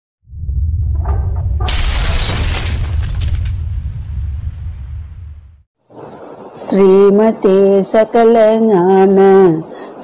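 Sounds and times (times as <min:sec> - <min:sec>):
deep rumble: 0:00.2 - 0:05.7
stone wall shattering crash: 0:01.6 - 0:04.0.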